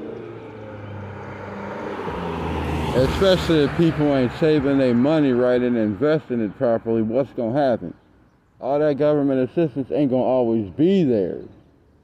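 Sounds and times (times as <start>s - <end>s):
passing vehicle engine: 0.0s - 7.1s.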